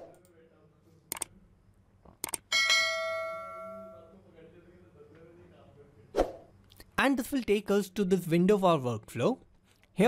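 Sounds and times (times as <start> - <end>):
mouse clicks: 2.2 - 2.4
bright bell ding: 2.5 - 4.1.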